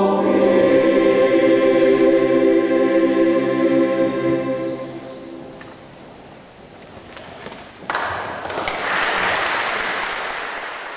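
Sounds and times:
audience applause: 8.6s - 10.9s.

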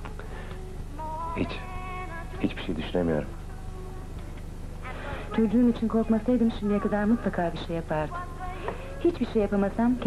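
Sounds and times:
low electrical buzz: 0.0s - 10.0s.

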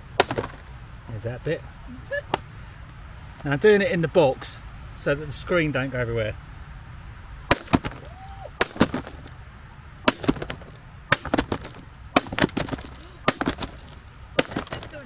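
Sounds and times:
hammer smashing laptop: 7.5s - 9.3s, 10.1s - 15.0s.

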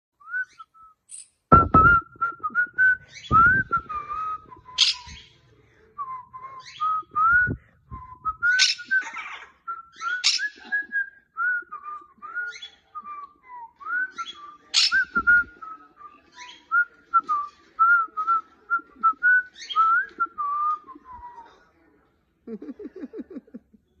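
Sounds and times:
whistled tune: 0.2s - 5.4s
dull bumps: 1.5s - 2.6s, 3.3s - 4.8s.

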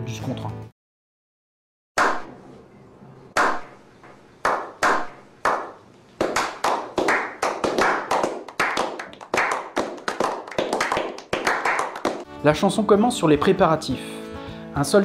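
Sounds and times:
people clapping: 4.4s - 12.3s.

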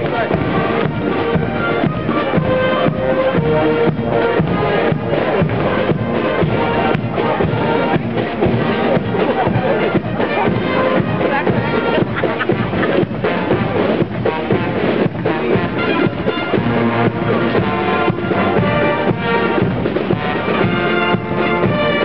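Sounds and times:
brass marching band: 0.0s - 22.0s
steady drum beat: 0.0s - 22.0s.

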